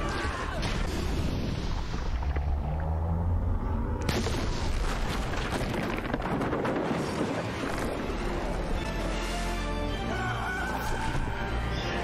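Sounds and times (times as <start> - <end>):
deep rumble: 0.8 - 8.9
orchestral music: 7.8 - 12.0.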